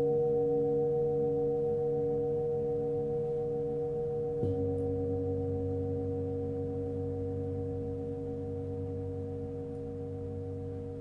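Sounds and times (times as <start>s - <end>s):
singing bowls ringing: 0.0s - 11.0s
bowl struck with felt mallet: 2.0s - 11.0s.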